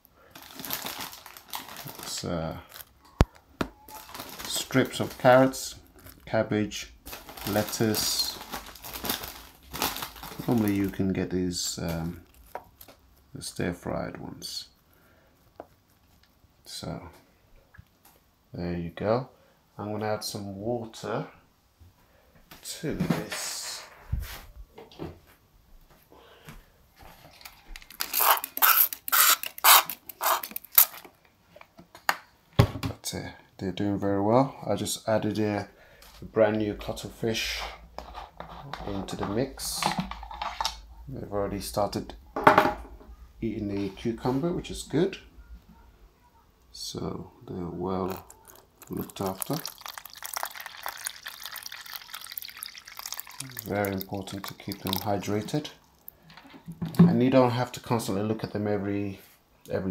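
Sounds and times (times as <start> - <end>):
water pouring into a tub: 7.2 - 10.9, 48.1 - 56.1
handling noise: 27.0 - 31.2
spray bottle squirts: 28.1 - 30.8.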